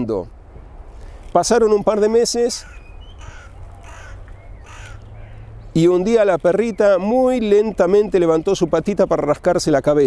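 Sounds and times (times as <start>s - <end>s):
crows cawing: 2.5s - 5.6s.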